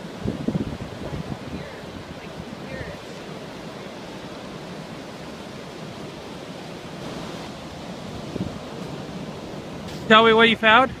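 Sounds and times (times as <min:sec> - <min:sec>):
waves breaking on sand beach: 0:00.0 - 0:11.0
wind on microphone: 0:00.0 - 0:11.0.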